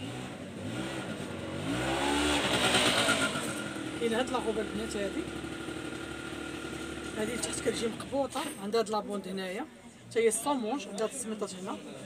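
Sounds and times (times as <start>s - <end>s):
engine idling: 2.4s - 8.2s.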